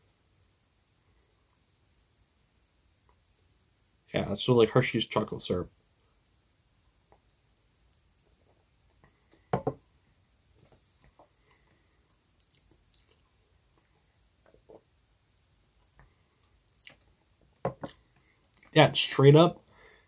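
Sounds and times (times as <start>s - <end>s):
person sipping and swallowing: 12.4s - 13.2s
lip smacks: 12.4s - 14.6s, 16.7s - 17.1s.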